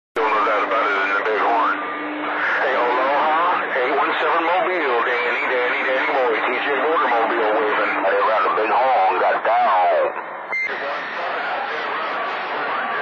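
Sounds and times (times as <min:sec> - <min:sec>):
distant voices over radio: 0:00.2 - 0:13.0
radio static hiss: 0:00.2 - 0:13.0
steady low tone: 0:00.2 - 0:13.0.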